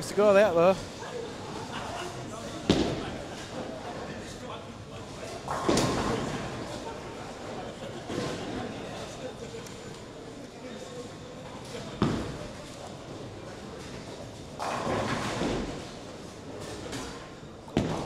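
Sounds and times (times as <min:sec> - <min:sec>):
background chatter: 0:00.0 - 0:18.0.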